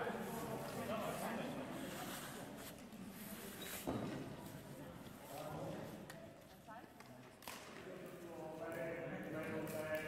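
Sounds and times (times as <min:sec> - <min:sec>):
indistinct voices in a hall: 0:00.0 - 0:10.0.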